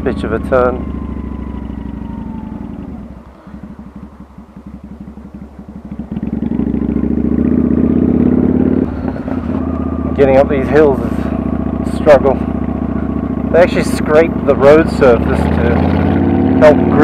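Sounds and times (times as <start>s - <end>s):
motorcycle engine revving: 0.0s - 17.0s.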